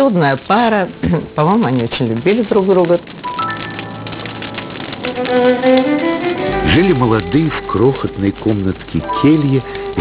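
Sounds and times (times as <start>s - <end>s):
soft background music: 0.0s - 10.0s
wood fire crackling: 0.0s - 10.0s.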